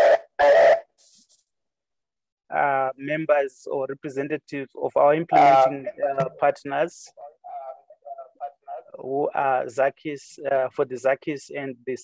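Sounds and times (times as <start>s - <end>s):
man talking over video call: 2.5s - 12.0s.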